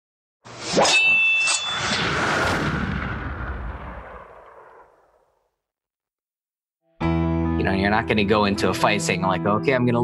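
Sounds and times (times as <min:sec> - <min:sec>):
deep noisy boom: 0:02.0 - 0:05.3.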